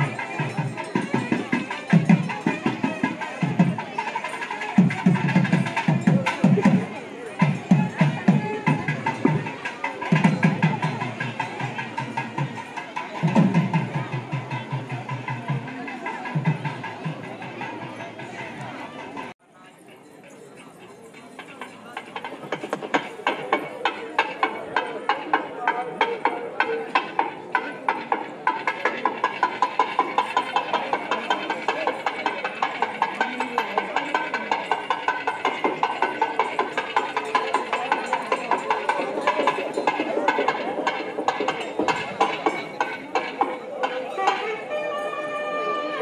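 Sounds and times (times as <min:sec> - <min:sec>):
drums beating fast rhythm: 0:00.0 - 0:19.4, 0:21.4 - 0:44.7
crowd chatter: 0:00.0 - 0:46.0.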